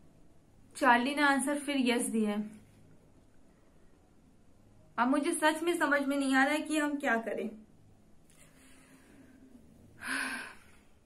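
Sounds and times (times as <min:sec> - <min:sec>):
woman breathing: 0:08.3 - 0:11.0.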